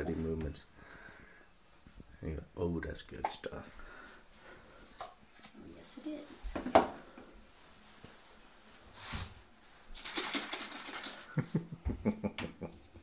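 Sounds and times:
handling noises: 9.9s - 11.4s.

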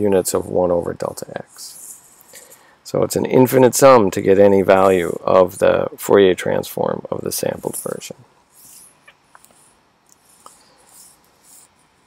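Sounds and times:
person speaking: 0.0s - 8.8s.

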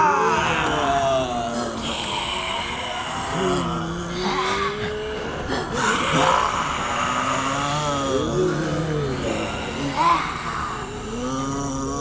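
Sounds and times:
eerie moaning tones: 0.0s - 12.0s.

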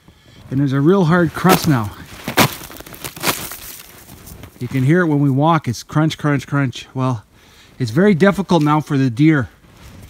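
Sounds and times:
footsteps crunching on snow crust: 0.1s - 5.4s.

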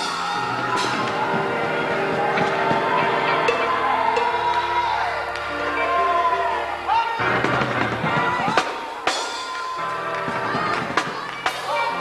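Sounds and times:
drum and cymbal hits: 0.0s - 4.9s, 7.2s - 12.0s
sustained keyboard chords: 0.0s - 12.0s.

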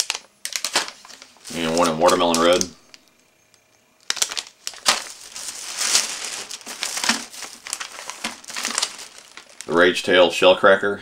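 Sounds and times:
plastic bag crinkling: 0.0s - 3.0s, 4.0s - 10.2s.

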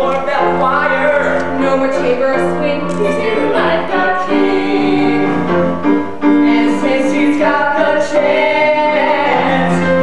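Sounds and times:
musical accompaniment: 0.0s - 10.0s
voices singing held notes: 0.0s - 10.0s.

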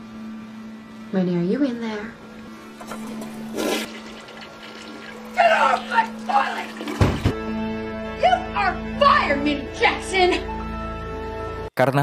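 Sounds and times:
toilet flushing: 2.8s - 7.4s.

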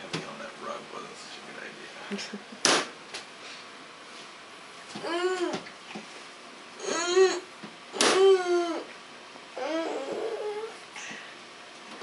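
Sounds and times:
toddler whining: 5.0s - 5.6s, 6.8s - 8.9s, 9.6s - 10.8s.

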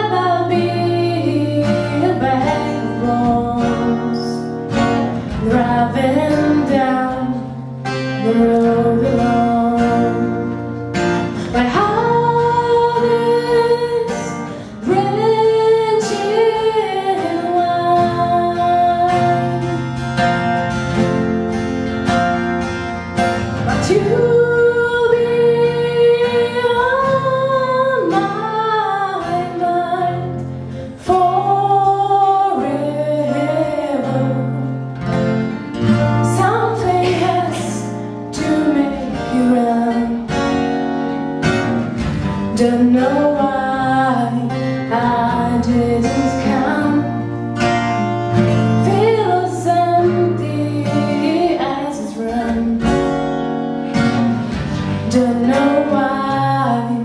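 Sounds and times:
woman singing: 0.0s - 20.1s, 23.6s - 53.4s, 54.8s - 57.0s
classical guitars playing: 0.0s - 57.0s.

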